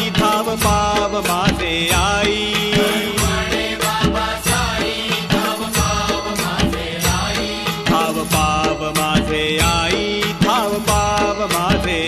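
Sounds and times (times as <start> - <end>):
steady drum beat: 0.0 - 12.0.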